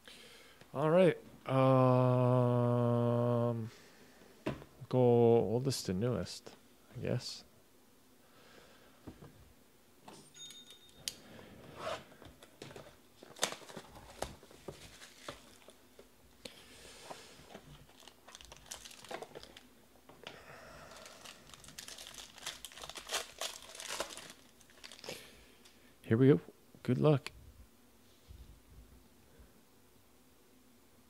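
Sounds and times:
packaging tearing: 13.2 - 15.8, 17.7 - 19.7, 20.9 - 25.2
wrapper crinkling: 13.2 - 15.8, 17.5 - 19.7, 20.8 - 25.3.

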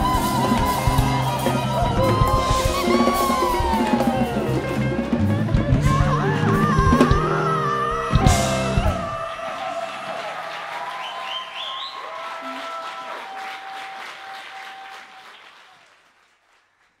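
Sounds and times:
audience applauding and cheering: 0.0 - 17.0.

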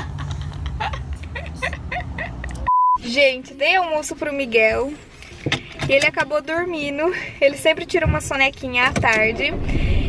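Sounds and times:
people laughing: 0.0 - 2.7
censor bleep: 2.7 - 3.0.

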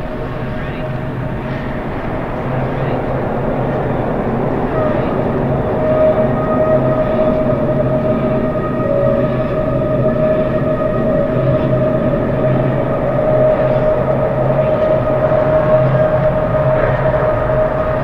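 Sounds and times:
droning electronic music: 0.0 - 18.0.

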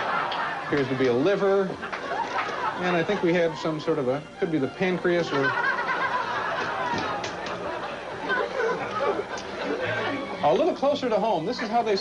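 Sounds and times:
indistinct voices chattering: 1.5 - 12.0.

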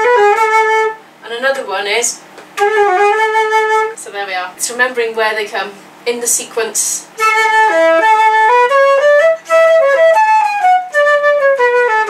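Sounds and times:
concert flute folk melody: 0.0 - 1.0, 2.6 - 4.0, 7.1 - 12.0.

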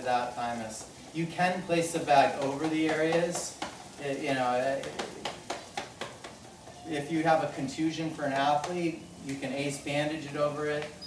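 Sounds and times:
fingers tapping on crinkly bag: 0.7 - 6.8.

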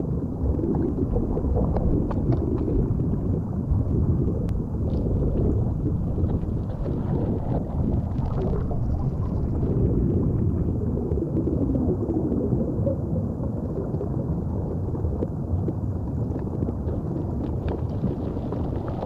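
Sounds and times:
underwater rumble of moving water: 0.0 - 19.0
faint underwater clicks: 0.4 - 9.7, 11.1 - 19.0.

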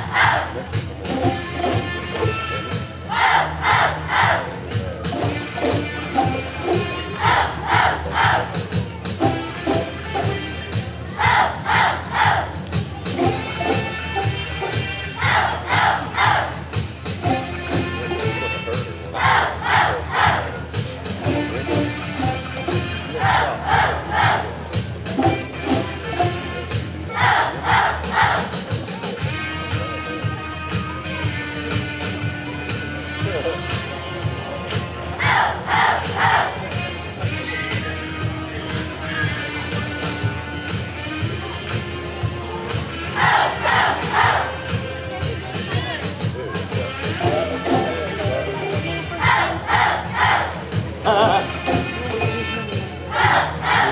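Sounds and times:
music with a steady beat: 0.0 - 53.9
children shouting in unison: 3.1 - 4.4, 11.2 - 12.4, 15.2 - 16.5, 35.2 - 36.5, 53.1 - 53.9.

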